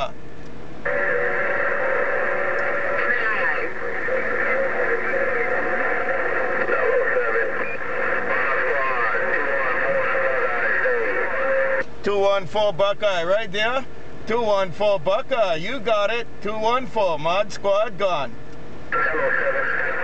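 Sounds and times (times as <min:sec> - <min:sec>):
wavering radio whistles: 0:00.8 - 0:11.9, 0:18.9 - 0:20.0
garbled radio voices: 0:00.8 - 0:20.0
clear radio voice: 0:00.9 - 0:13.6, 0:18.9 - 0:20.0.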